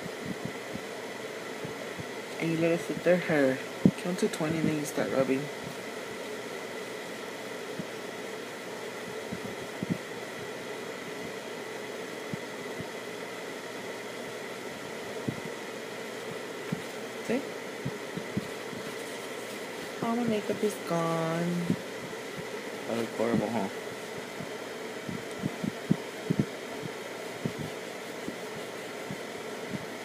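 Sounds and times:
machine hum with high whine: 0.0 - 30.0
soft low thumps: 1.6 - 2.2, 9.1 - 10.1, 15.2 - 15.6, 17.8 - 18.9, 24.3 - 28.4.

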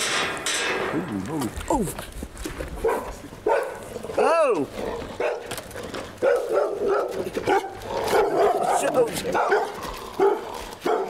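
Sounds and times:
dog barking: 2.8 - 3.9, 4.9 - 5.6, 6.2 - 11.0.

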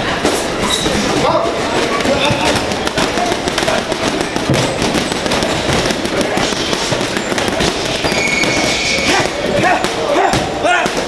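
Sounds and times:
gloves punching heavy bag: 0.2 - 11.0.

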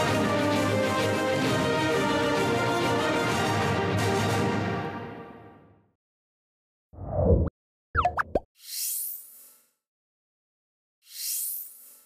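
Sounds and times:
high falling swish: 7.0 - 8.4
bubbly pops bending in pitch: 8.0 - 8.4.

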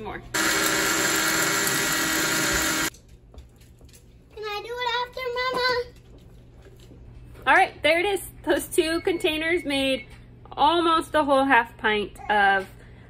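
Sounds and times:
blender motor grinding: 0.4 - 2.9.

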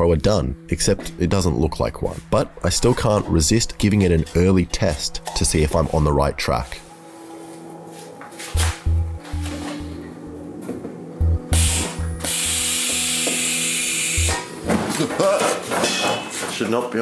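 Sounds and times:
background music with low beat: 0.0 - 16.2
propane gas hissing: 11.5 - 14.6.

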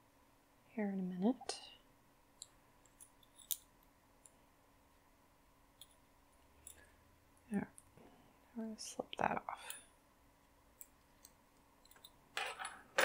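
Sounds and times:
knitting needles clicking: 9.1 - 12.2.

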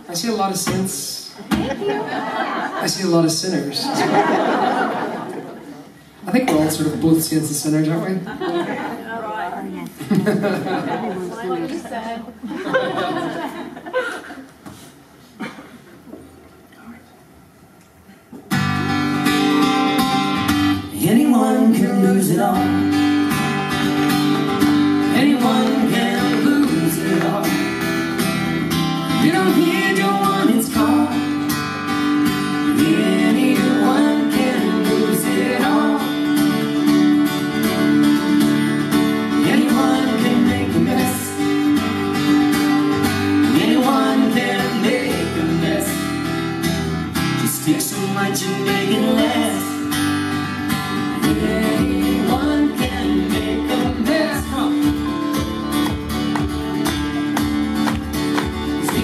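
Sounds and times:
strummed acoustic guitars: 0.0 - 8.6, 18.4 - 59.0.

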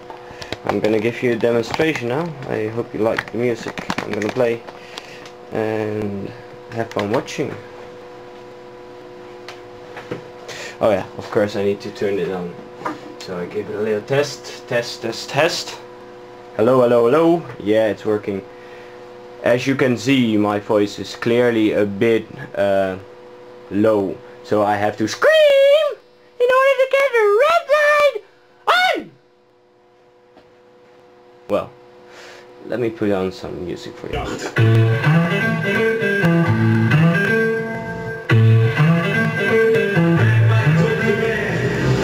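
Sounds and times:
steady machine hum: 0.0 - 42.0
man yelling at high pitch: 25.1 - 29.2.

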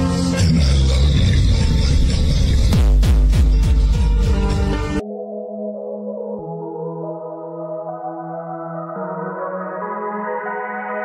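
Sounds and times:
electronic dance music: 0.0 - 5.0
punchy bass kicks: 2.6 - 5.0.

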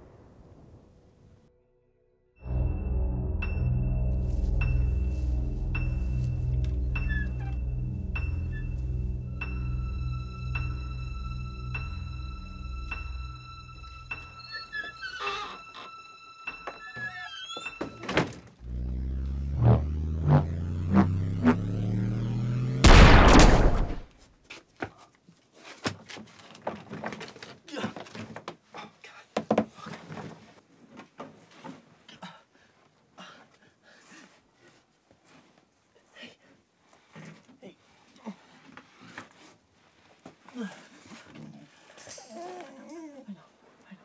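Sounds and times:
low drone hum: 2.4 - 15.1, 18.6 - 24.1
short pulsing tones: 18.6 - 23.9
dog whimpering softly: 42.2 - 43.5.

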